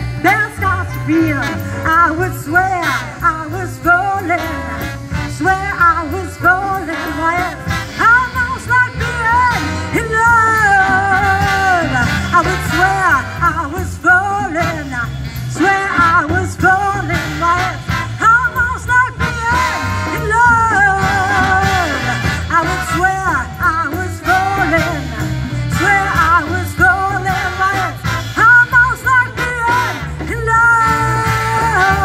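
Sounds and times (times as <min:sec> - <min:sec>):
bass: 0:00.0 - 0:32.0
drums: 0:00.0 - 0:32.0
saxophone and brass: 0:00.0 - 0:32.0.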